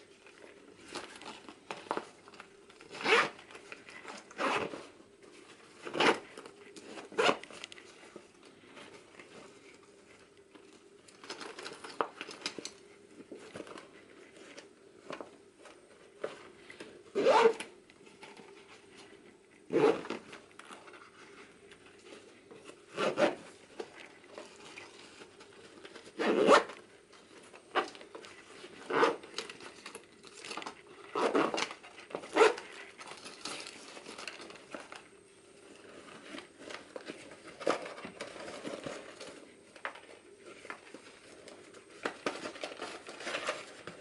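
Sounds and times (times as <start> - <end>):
bag zipper zipping: 3.0 - 3.4, 4.4 - 4.8, 17.2 - 17.6, 19.7 - 20.2, 22.9 - 23.4, 26.2 - 26.7, 28.9 - 29.2.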